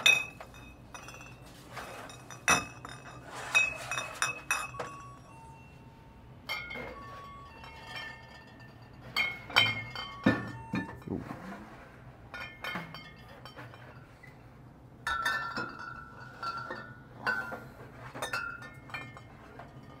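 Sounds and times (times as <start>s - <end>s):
glass bottles clinking: 0.0s - 5.7s, 6.4s - 11.4s, 12.3s - 14.4s, 15.0s - 20.0s.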